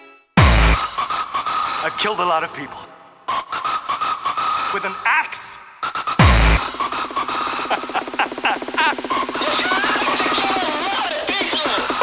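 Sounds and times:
distorted synth with stutter: 0.4 - 1.8, 5.8 - 12.0
hardcore techno track: 0.4 - 12.0.

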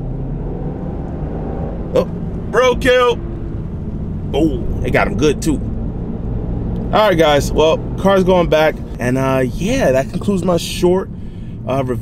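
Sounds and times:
car engine cruising in cabin: 0.0 - 12.0
road noise: 0.0 - 12.0.

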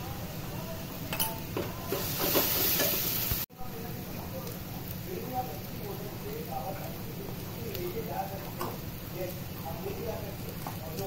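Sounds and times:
frying sizzle: 0.0 - 11.0
metal spatula scraping a pan: 1.9 - 3.2.

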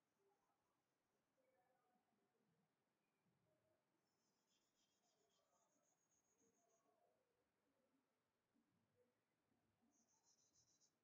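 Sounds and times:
chalk scratching on blackboard: 4.3 - 6.8, 9.9 - 11.0.

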